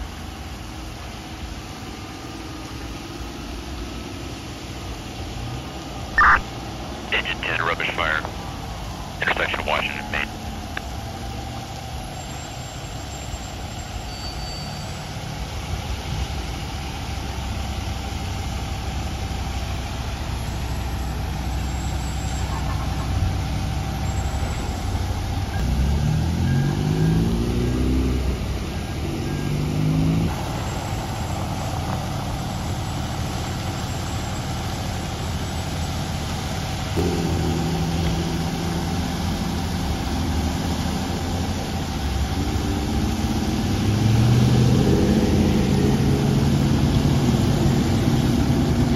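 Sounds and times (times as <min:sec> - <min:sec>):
fire engine running: 0:00.0 - 0:48.9
vehicles accelerating: 0:14.9 - 0:48.9.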